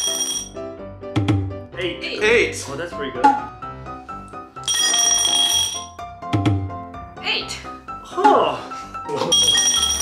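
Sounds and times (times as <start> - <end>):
background music: 0.0 - 10.0
bright bell-like ringing: 4.6 - 5.9, 9.3 - 10.0.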